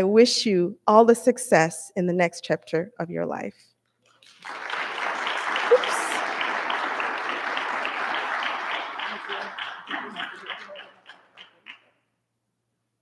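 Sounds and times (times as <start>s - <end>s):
audience applauding: 4.2s - 11.9s.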